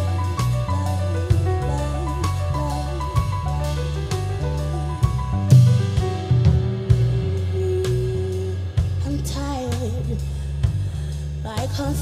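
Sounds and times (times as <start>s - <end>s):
woman singing: 0.0s - 4.9s, 6.4s - 10.4s, 11.4s - 12.0s
live band with drum kit: 0.0s - 12.0s.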